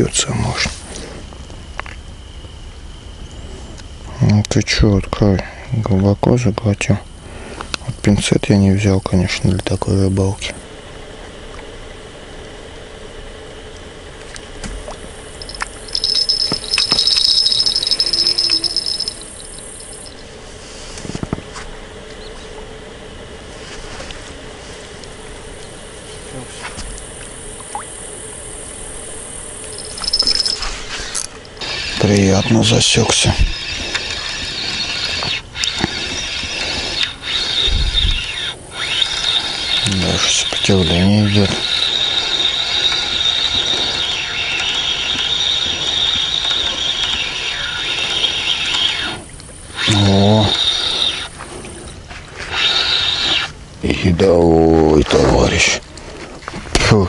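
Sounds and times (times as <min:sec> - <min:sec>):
bite alarm high-pitched beeps: 0:15.4 - 0:20.2
fishing reel drag buzzing: 0:15.4 - 0:20.2, 0:29.7 - 0:31.3.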